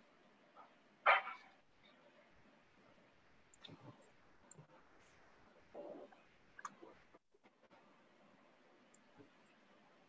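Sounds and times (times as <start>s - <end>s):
dog barking: 0.6s - 1.5s.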